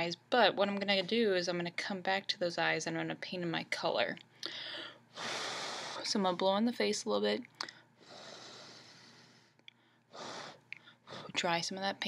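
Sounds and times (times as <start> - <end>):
person blowing a breath: 4.4 - 6.0, 10.1 - 11.3.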